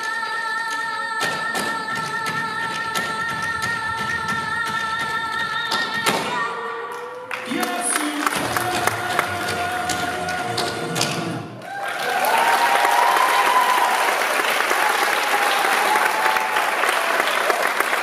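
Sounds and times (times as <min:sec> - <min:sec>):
song backing music: 0:00.0 - 0:11.6
audience applauding: 0:07.3 - 0:18.0.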